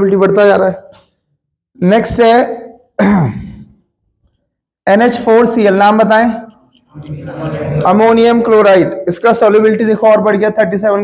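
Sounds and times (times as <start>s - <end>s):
man speaking: 4.8s - 11.0s.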